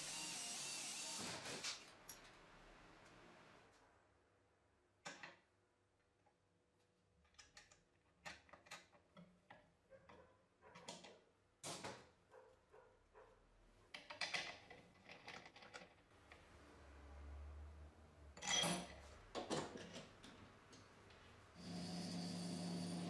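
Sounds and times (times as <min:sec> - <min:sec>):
tools clicking and tapping on metal: 0:13.9 - 0:16.0.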